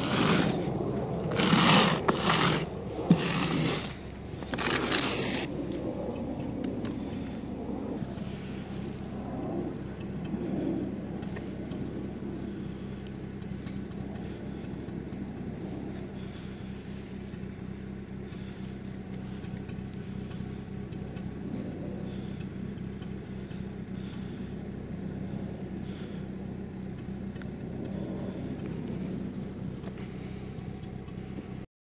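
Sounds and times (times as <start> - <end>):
fingertip scratching in snow: 0.0 - 5.5, 8.0 - 9.2
engine idling hum: 0.0 - 31.7.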